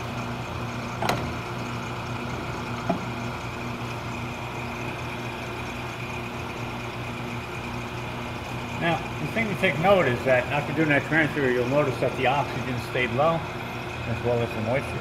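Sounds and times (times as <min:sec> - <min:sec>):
machinery humming: 0:00.0 - 0:15.0.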